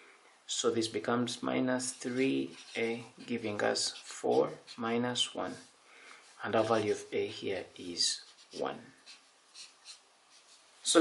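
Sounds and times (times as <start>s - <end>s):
pen scratching on paper: 1.8s - 5.7s, 6.4s - 10.7s.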